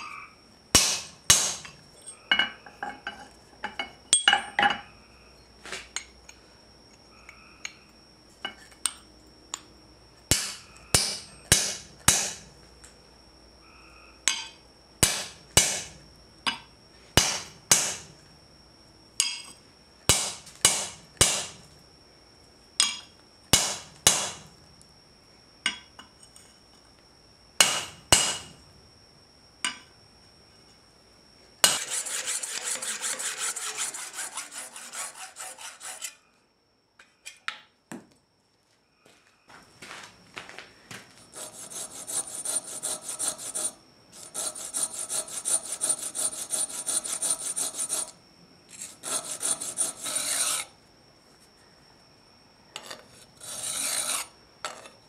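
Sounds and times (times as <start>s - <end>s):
hammer striking metal punch: 0.8s - 1.7s, 10.3s - 12.4s, 14.3s - 15.9s, 17.2s - 18.0s, 20.1s - 21.6s, 23.6s - 24.4s, 27.6s - 28.6s
saw rasping through metal: 31.7s - 36.2s, 41.4s - 48.2s, 48.8s - 50.7s, 53.4s - 54.3s.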